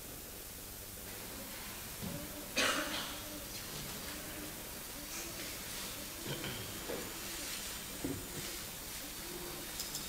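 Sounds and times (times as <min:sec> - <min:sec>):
faint throat and voice sounds: 0:02.0 - 0:07.6
person coughing: 0:02.6 - 0:03.3, 0:06.2 - 0:06.8.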